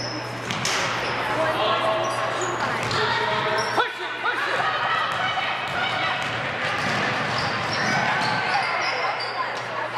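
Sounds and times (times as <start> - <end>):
sneakers squeaking: 0.0 - 9.9
players and spectators calling out: 1.0 - 9.9
basketball bouncing: 2.8 - 3.4, 5.0 - 8.6.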